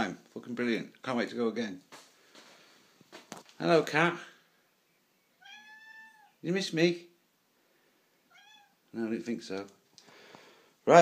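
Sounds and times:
cat meowing: 5.4 - 6.4, 8.3 - 8.9.

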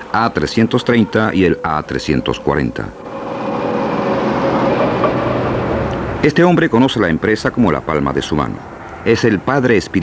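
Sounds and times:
vehicle rushing hiss: 2.9 - 6.6.

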